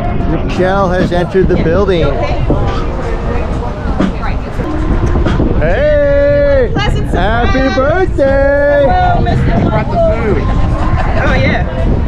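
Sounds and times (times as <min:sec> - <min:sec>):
low rumble: 0:00.0 - 0:12.0
people chattering: 0:00.0 - 0:12.0
person calling a long greeting: 0:05.6 - 0:10.4.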